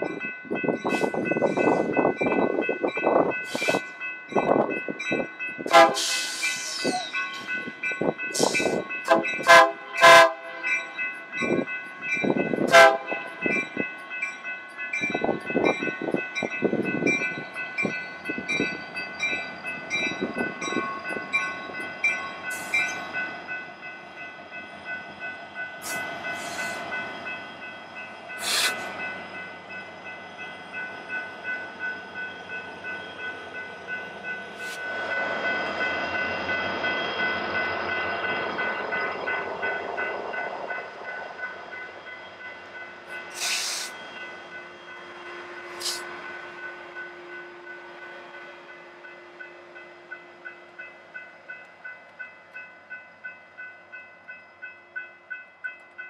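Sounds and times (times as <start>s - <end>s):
crossing warning bell ringing: 0.0s - 56.0s
train wheels rumbling on rails: 0.0s - 56.0s.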